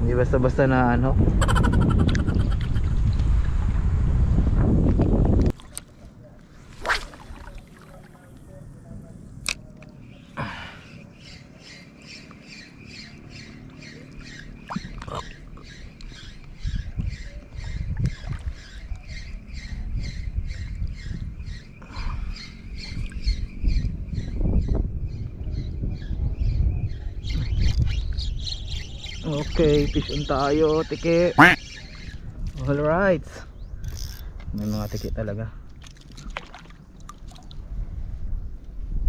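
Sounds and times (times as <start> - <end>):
low rumbling noise: 0.0 - 5.4
fishing reel ticking: 33.8 - 35.1.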